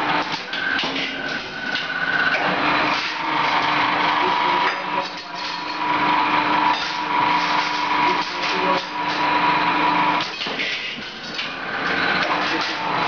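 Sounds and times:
machine whine and hum: 0.0 - 13.0.

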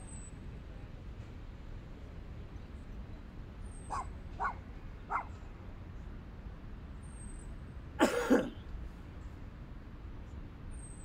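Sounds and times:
dogs barking: 3.9 - 5.3.

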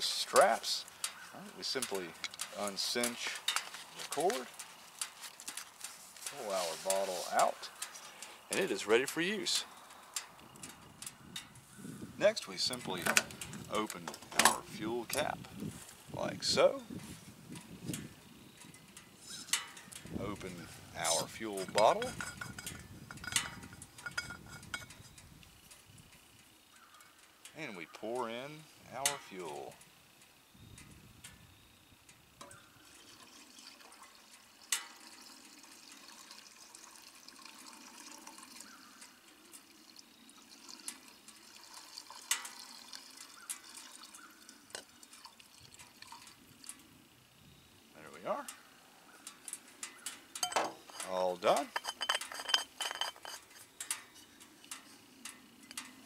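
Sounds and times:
faint handling sounds: 0.0 - 11.8, 12.6 - 29.8, 48.4 - 56.0
metal bottle clinking on fuel tank: 18.7 - 25.2, 49.8 - 56.0.

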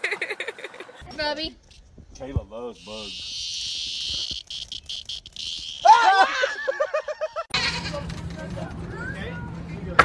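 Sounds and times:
people laughing: 0.0 - 1.0, 5.8 - 8.0
insect buzzing: 2.6 - 6.0.

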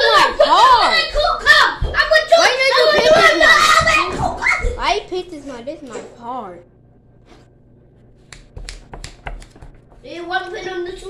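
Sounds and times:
sharp clicks and taps: 8.3 - 10.0.

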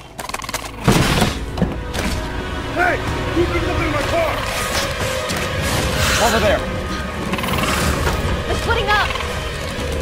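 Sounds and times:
film music score: 0.0 - 10.0.

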